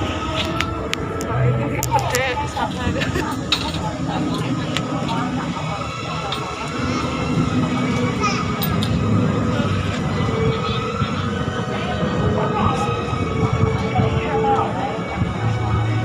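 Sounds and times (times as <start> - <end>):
busy background hum: 0.0 - 16.0
indistinct voices: 0.0 - 16.0.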